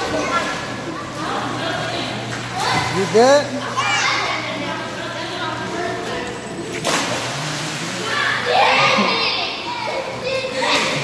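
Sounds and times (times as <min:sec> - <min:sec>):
children shouting and playing: 0:00.0 - 0:11.0.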